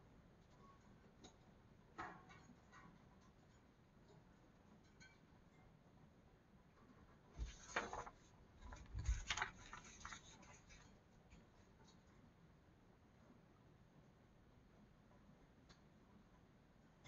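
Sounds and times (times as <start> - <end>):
paper page rustling: 7.4 - 11.0.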